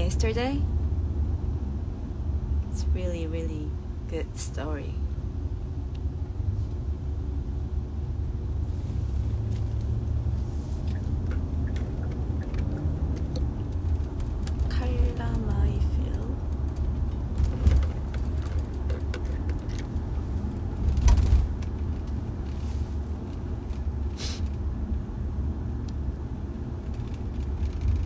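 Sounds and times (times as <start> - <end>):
car cabin road and engine rumble: 0.0 - 28.0.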